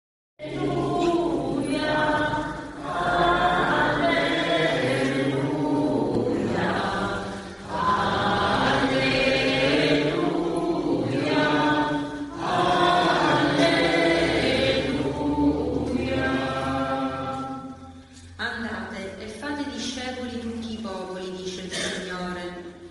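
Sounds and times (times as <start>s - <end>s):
choir chanting: 0.4s - 17.9s.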